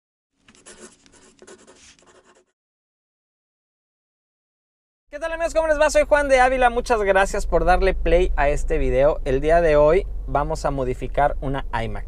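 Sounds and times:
pen scratching on paper: 0.4s - 2.6s.

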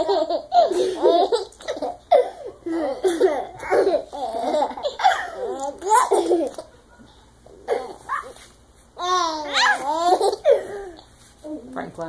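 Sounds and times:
baby laughing: 0.0s - 6.8s, 9.0s - 11.0s.

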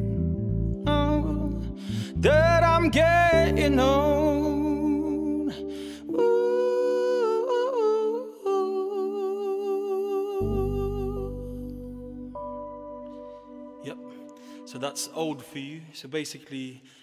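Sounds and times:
man humming a melody: 0.0s - 12.4s
electric keyboard chords: 0.0s - 15.6s.

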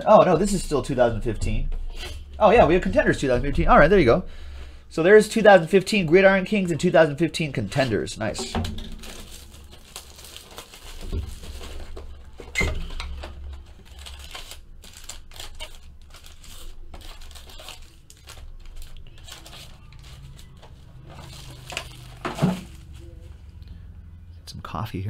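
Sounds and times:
cardboard and packs rustling: 7.4s - 23.5s.

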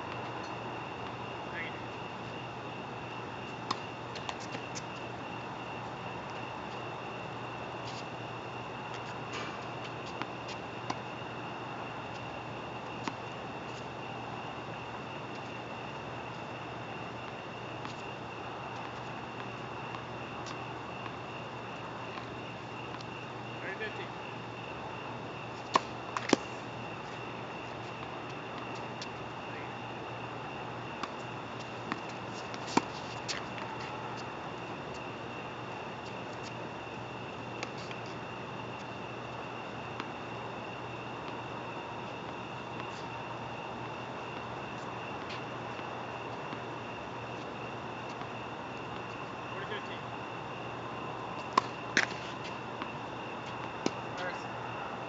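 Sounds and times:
outdoor background hiss: 0.0s - 55.0s
steady high-pitched hum: 0.0s - 55.0s.

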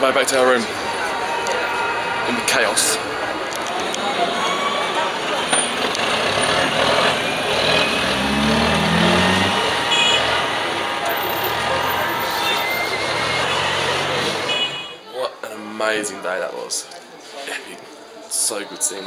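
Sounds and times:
people's voices: 0.0s - 19.0s
scooters and cars running: 2.9s - 15.0s
engine revving: 5.8s - 12.2s, 12.8s - 14.5s.

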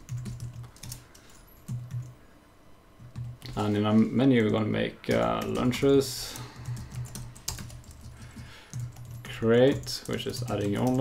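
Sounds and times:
soft keyboard typing: 0.0s - 2.2s, 3.0s - 3.7s, 4.3s - 11.0s.

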